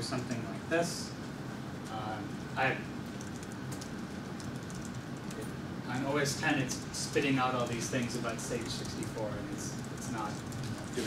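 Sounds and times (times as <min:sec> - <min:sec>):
low room hum: 0:00.0 - 0:11.0
laptop keys clicking: 0:03.2 - 0:05.4.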